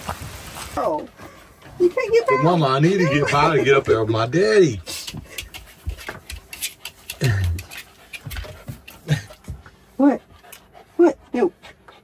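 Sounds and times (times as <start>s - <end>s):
dog panting and whimpering: 1.1s - 4.2s, 4.8s - 12.0s.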